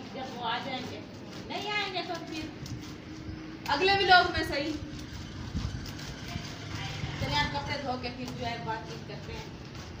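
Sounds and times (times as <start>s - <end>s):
scrubbing wet laundry: 0.0s - 10.0s.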